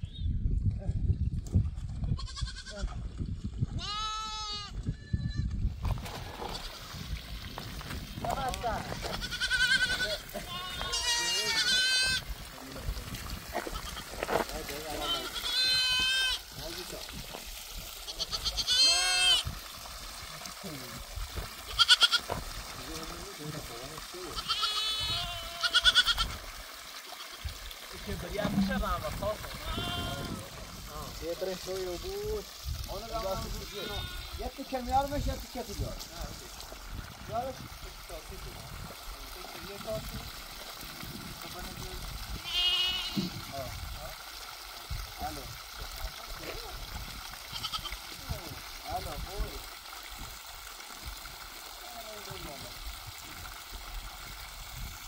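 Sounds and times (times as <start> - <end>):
goats bleating: 2.2 - 2.9, 3.8 - 5.4, 8.8 - 12.3, 13.5 - 16.5, 18.0 - 19.5, 21.6 - 22.4, 24.2 - 26.4, 29.6 - 30.5, 33.2 - 34.6, 42.4 - 43.4, 47.4 - 48.1.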